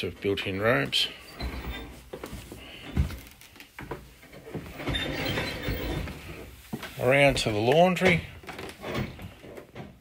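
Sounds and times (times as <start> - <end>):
wooden door scraping open: 1.3 - 3.5, 4.3 - 10.0
footsteps on wooden floorboards: 1.4 - 10.0.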